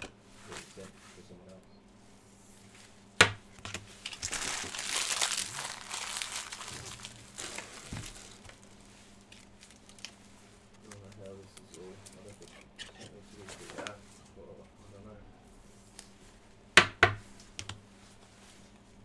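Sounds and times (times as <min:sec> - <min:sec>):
cellophane wrapper crinkling and tearing: 0:04.0 - 0:12.6
small rustles and taps: 0:06.6 - 0:12.8, 0:17.1 - 0:17.8.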